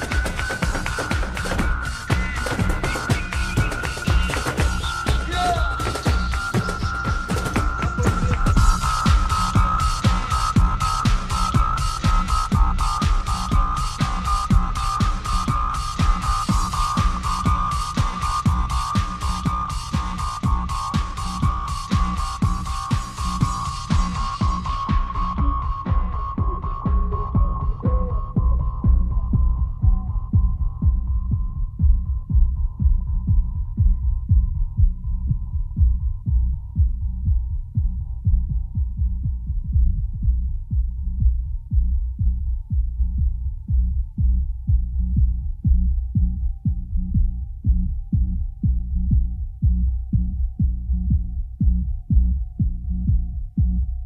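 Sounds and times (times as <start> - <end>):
muffled kick drum and bass: 0.0 - 54.0.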